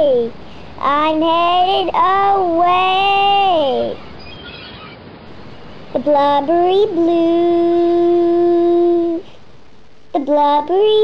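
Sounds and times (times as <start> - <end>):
steady background noise: 0.0 - 11.0
faint high chirps: 3.9 - 5.1.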